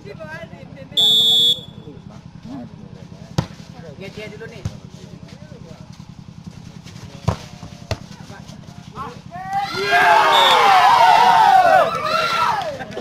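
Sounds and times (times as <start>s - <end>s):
volleyball struck by hands: 3.3s - 3.6s, 4.6s - 4.9s, 7.2s - 8.2s
players shouting: 9.3s - 13.0s.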